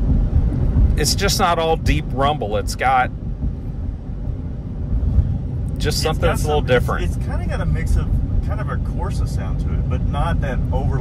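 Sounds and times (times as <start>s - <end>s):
car engine cruising: 0.0s - 11.0s
road noise inside cabin: 0.0s - 11.0s.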